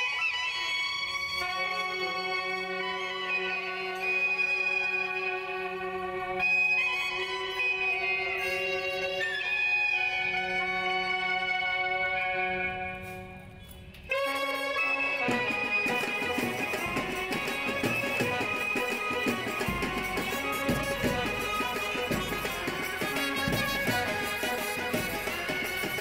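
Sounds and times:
held melody notes: 1.4 - 26.0.

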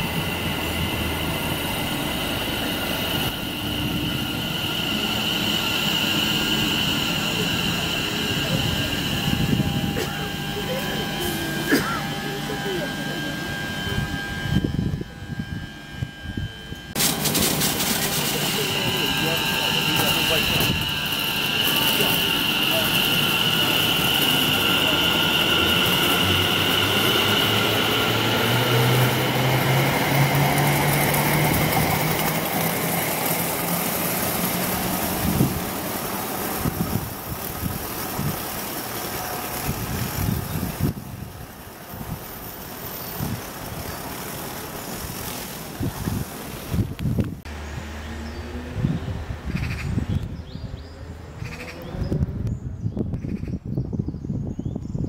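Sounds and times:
train motor hum: 0.0 - 49.4
train running gear whine: 0.0 - 55.0.

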